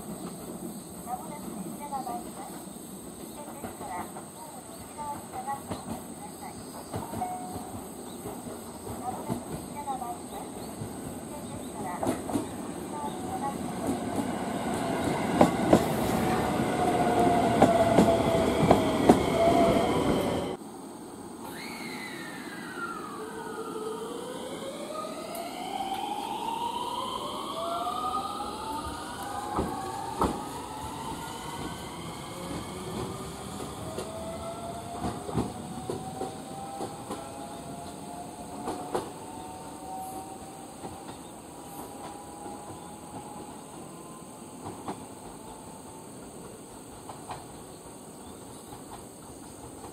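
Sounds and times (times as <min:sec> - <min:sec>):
train motor whine: 0:21.4 - 0:44.2
whining motor tones climbing in pitch: 0:21.9 - 0:38.3.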